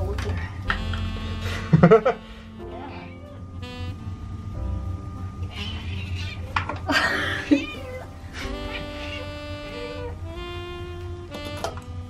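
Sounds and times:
background music: 0.0s - 12.0s
cat meowing: 5.5s - 6.6s, 7.3s - 10.2s.

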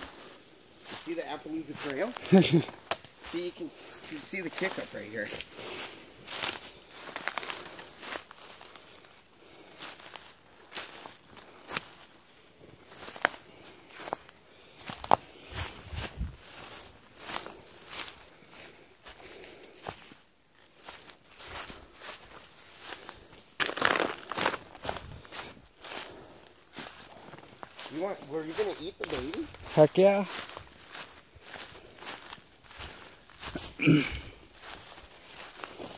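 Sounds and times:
footsteps in leaf litter: 0.0s - 35.9s
plants rustling: 0.0s - 35.9s.

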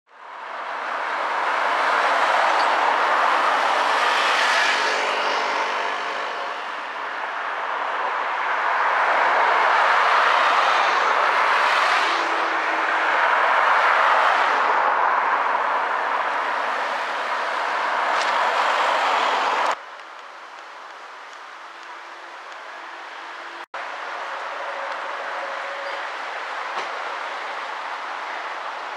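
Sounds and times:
cars passing: 0.1s - 28.9s.

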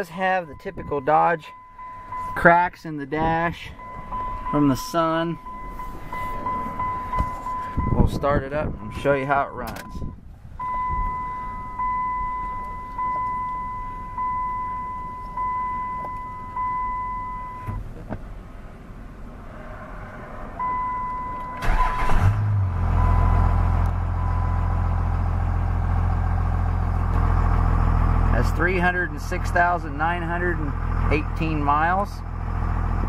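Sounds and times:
dashboard warning chime: 0.0s - 17.8s, 20.6s - 22.0s
diesel engine idling: 0.0s - 33.0s.

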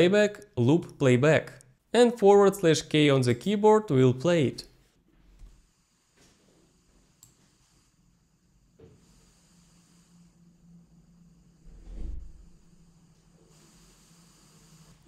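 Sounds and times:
low hum: 10.2s - 13.8s.

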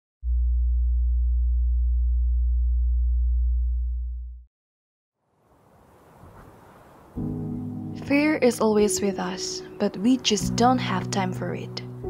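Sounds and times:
deep electronic tone: 0.2s - 4.5s.

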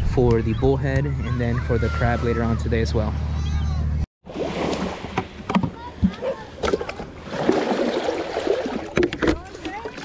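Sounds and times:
bucket splashing in water: 4.2s - 10.0s.

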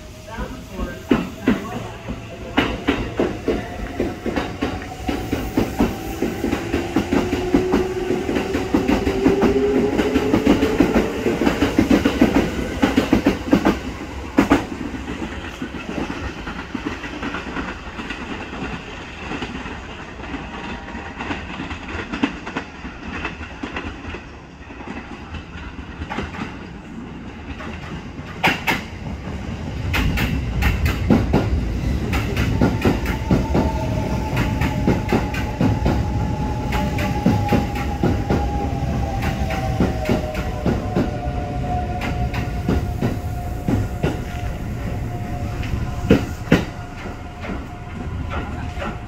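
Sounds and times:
train rumble and clatter: 0.0s - 49.0s
train wheels clacking over rail joints: 27.4s - 38.5s.

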